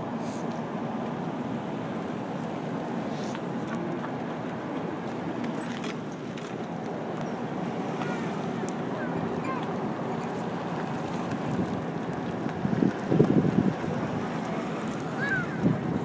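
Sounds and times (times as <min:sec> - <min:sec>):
cars driving past: 0:00.0 - 0:16.0
wind buffeting microphone: 0:07.5 - 0:16.0.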